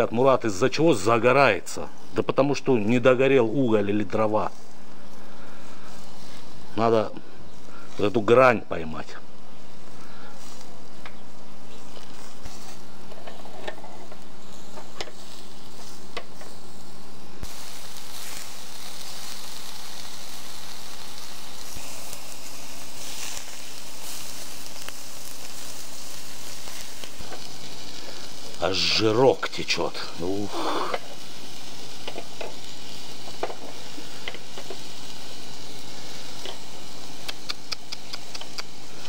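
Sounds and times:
fat crackling on coals: 0:00.0 - 0:39.0
kebabs sizzling over charcoal: 0:00.0 - 0:39.0.

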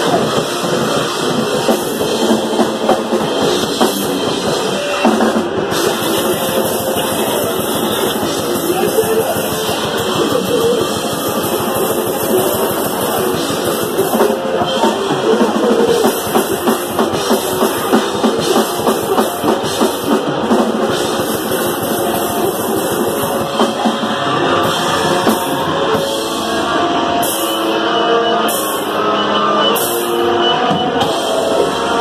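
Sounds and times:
fast heavy drumming: 0:00.0 - 0:27.8
distorted guitar and bass: 0:00.0 - 0:32.0.

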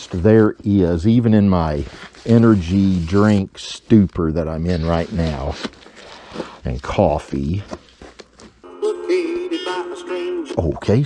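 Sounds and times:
country song from a record: 0:08.6 - 0:11.0.

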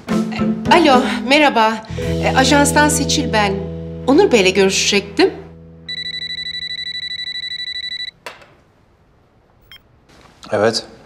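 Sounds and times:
desk phone electronic ringing: 0:05.9 - 0:08.2.

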